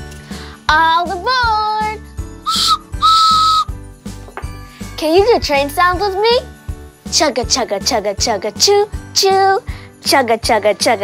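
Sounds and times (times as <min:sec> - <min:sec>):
train whistle: 0:02.5 - 0:03.7.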